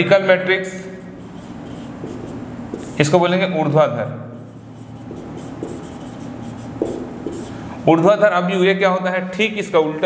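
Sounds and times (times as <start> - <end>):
marker scratching on whiteboard: 0.9 - 3.3, 4.4 - 7.7.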